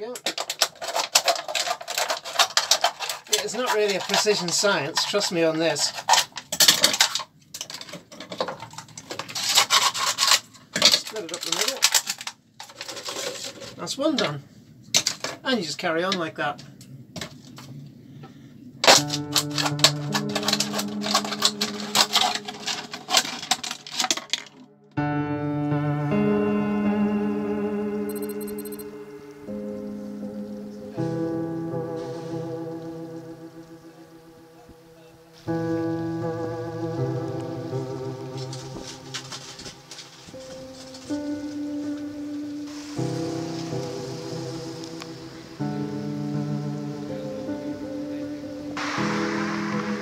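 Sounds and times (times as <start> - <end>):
plastic crackling and snapping: 0.0 - 5.2, 5.8 - 13.8, 18.8 - 24.7, 38.3 - 41.6
scissors cutting plastic bottle: 0.2 - 4.3, 8.7 - 12.9, 18.9 - 24.6
background music: 18.8 - 50.0.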